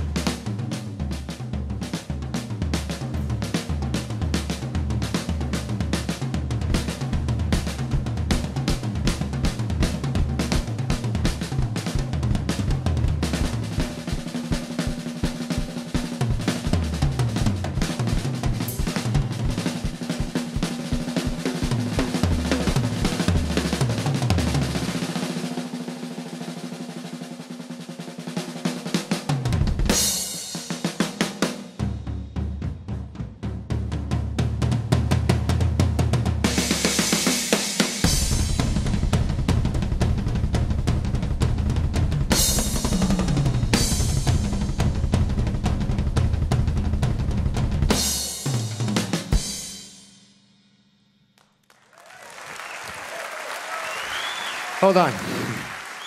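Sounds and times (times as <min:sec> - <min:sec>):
bass drum pounding: 0:00.0 - 0:24.7, 0:38.0 - 0:48.2
snare and tom fills: 0:00.0 - 0:49.7, 0:52.6 - 0:56.0
drum roll: 0:00.0 - 0:50.1, 0:52.0 - 0:56.0.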